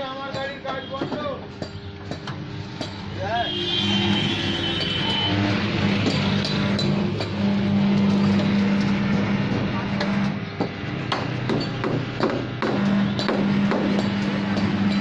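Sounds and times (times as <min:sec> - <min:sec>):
vehicle engine droning: 0:01.8 - 0:15.0.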